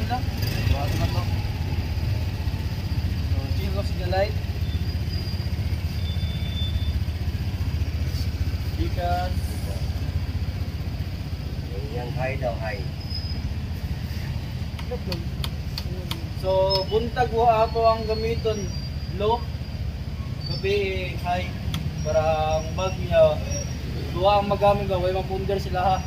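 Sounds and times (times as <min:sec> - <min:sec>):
scooter engine idling: 0:00.0 - 0:26.0.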